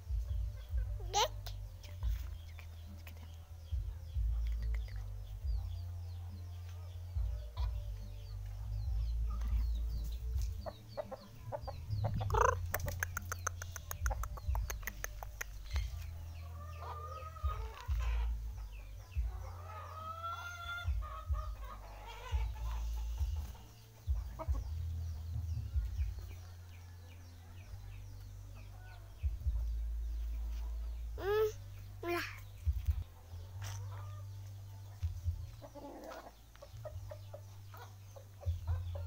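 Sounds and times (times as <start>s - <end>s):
small birds chirping: 0.0s - 39.0s
rooster clucking and calling: 11.0s - 15.5s, 19.3s - 23.7s.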